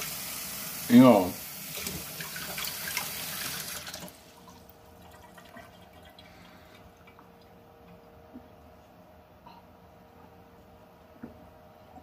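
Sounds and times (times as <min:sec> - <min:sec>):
water running from tap: 0:00.0 - 0:07.2
faint steady hum: 0:00.0 - 0:12.0.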